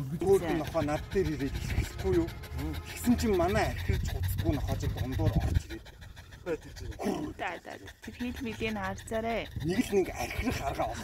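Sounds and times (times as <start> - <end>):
dog panting: 0.0 - 11.0
people's voices: 0.0 - 11.0.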